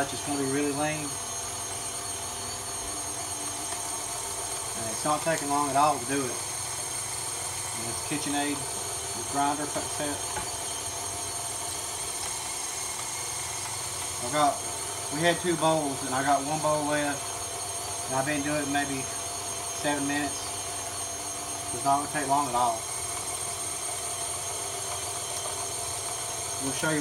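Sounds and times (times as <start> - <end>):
meat grinding: 0.0 - 27.0
mixer motor running: 0.0 - 27.0.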